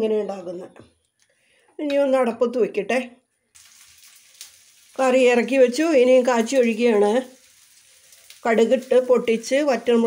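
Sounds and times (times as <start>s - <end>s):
curry simmering hiss and sizzle: 3.5s - 10.0s.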